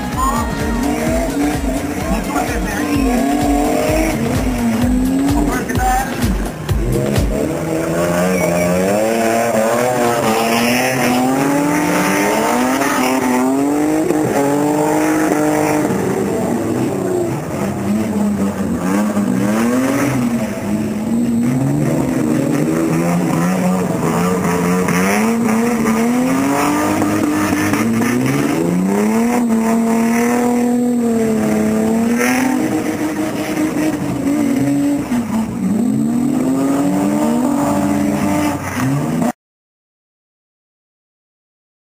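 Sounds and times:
car engine revving: 0.0s - 39.4s.

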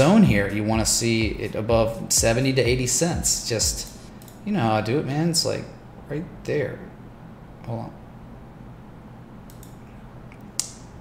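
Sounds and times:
low steady hum: 0.0s - 11.0s
computer mouse clicking: 3.8s - 4.4s, 9.4s - 10.9s.

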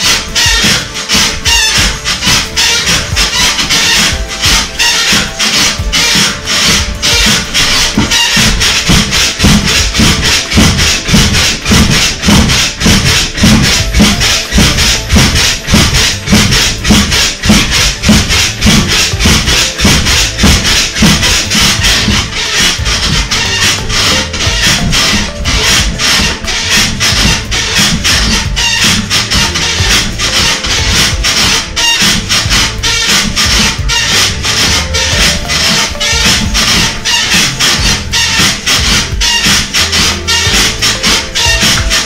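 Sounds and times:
music with a steady beat: 0.0s - 42.0s
trampoline creaking and thudding: 0.0s - 42.0s.

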